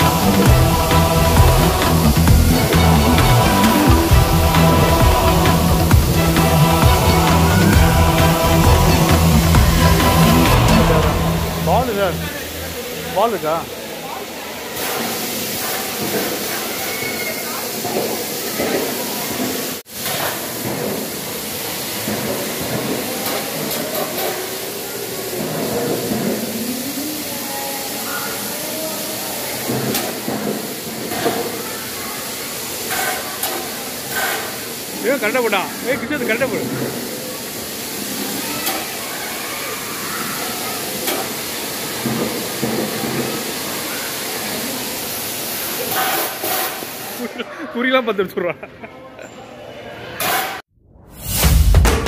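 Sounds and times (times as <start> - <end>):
air blowers hissing: 0.0 - 47.4
faint children's voices: 13.7 - 19.8, 21.7 - 35.1, 35.7 - 46.2.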